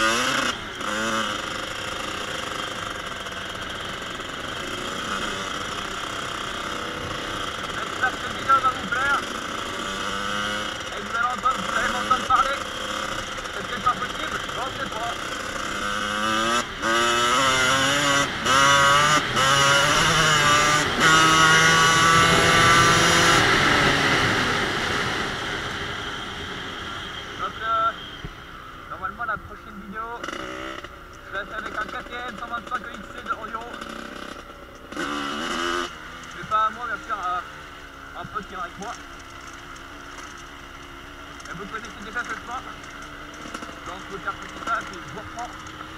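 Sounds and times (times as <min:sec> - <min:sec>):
motocross engine revving: 0:00.0 - 0:45.9.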